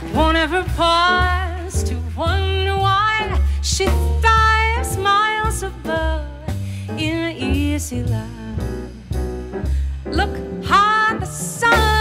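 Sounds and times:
woman singing: 0.0 - 9.2, 10.1 - 12.0
double bass: 0.0 - 12.0
drums: 0.0 - 12.0
grand piano: 0.0 - 12.0.

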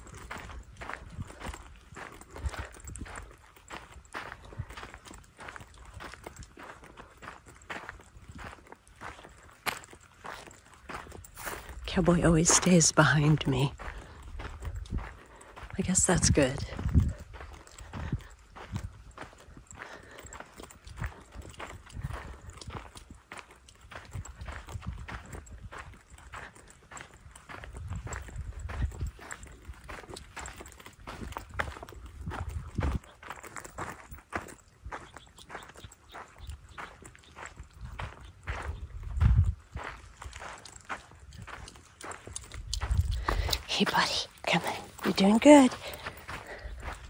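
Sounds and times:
footsteps on sandy dirt trail: 0.0 - 47.0.

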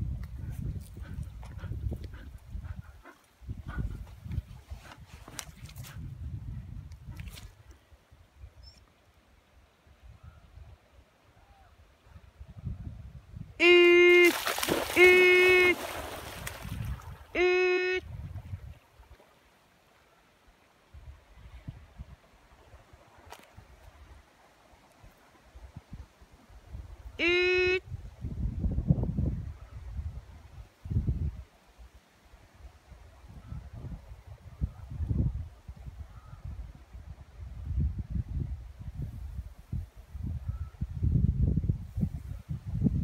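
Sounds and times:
wind rumbling on microphone: 0.0 - 8.8, 9.8 - 13.6, 14.3 - 19.2, 20.9 - 43.0
dog panting: 0.4 - 5.4.

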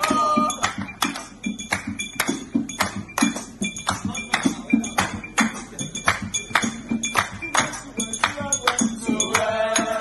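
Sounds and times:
quick percussive beat: 0.0 - 10.0
recorded music: 0.0 - 10.0.

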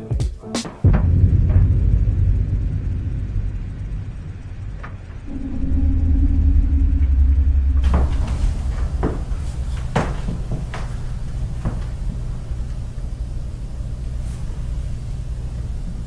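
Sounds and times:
steady low hum: 0.8 - 16.0
loud deep rumble: 0.9 - 16.0.

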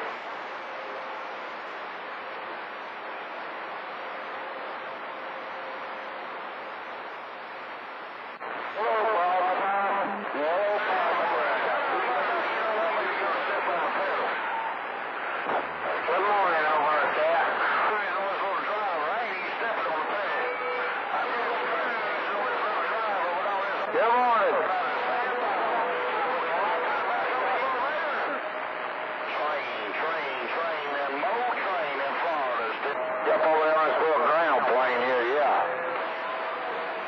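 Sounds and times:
radio static hiss: 0.0 - 37.0
distant voices over radio: 8.4 - 37.0.

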